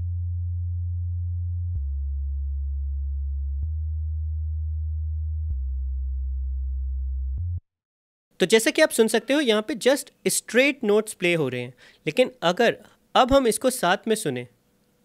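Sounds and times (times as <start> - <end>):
deep synth bass notes: 0.0 - 7.6.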